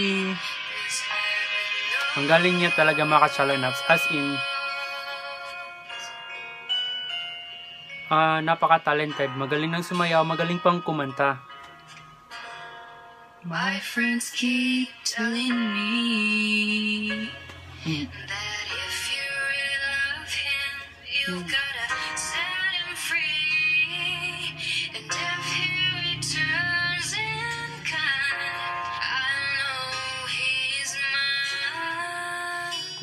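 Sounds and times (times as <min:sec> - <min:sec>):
woman singing a slow ballad: 0:00.0 - 0:02.7, 0:03.5 - 0:06.4, 0:13.4 - 0:33.0.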